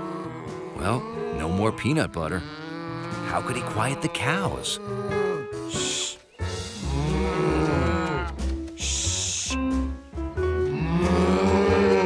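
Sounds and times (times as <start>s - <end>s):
cartoon cows mooing: 0.0s - 6.1s, 6.8s - 8.4s, 10.7s - 12.0s
background music with pulsing bass: 0.0s - 12.0s.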